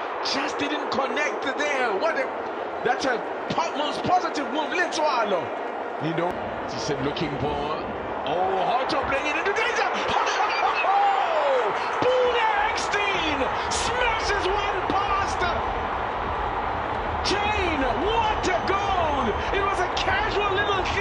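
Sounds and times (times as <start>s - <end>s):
stadium crowd voices: 0.0s - 21.0s.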